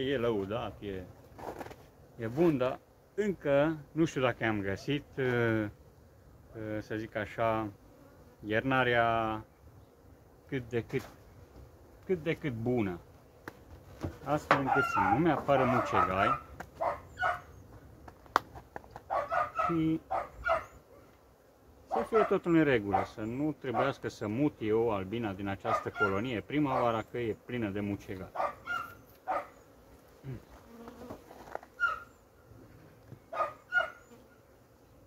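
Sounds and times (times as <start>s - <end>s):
faint low hum of bees: 0.0s - 35.0s
dog barking: 14.7s - 17.5s, 19.1s - 21.1s, 21.9s - 23.9s, 25.7s - 26.9s, 28.4s - 29.5s, 33.3s - 34.0s.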